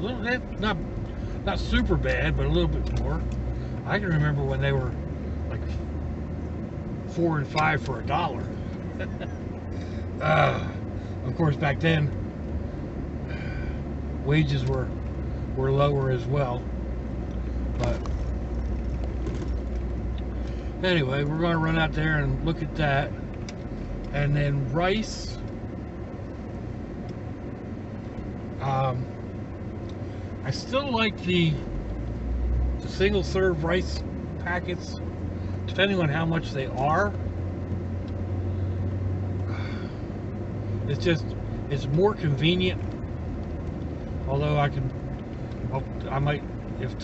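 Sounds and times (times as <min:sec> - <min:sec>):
vehicle interior engine and road noise: 0:00.0 - 0:47.0.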